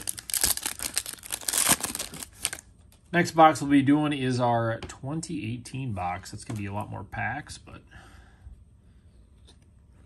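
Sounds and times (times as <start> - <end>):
plastic foil wrapper crinkling: 0.0 - 2.7.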